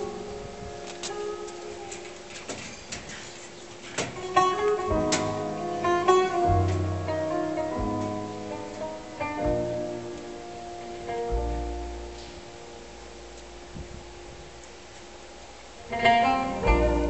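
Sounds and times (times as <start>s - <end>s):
oud plucked notes: 4.2s - 14.6s, 15.8s - 17.0s
low bass line: 4.8s - 17.0s.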